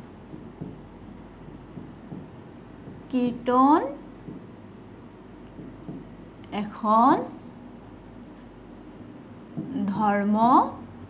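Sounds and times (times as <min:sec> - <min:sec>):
stylus scratching and tapping on board: 0:00.0 - 0:11.0.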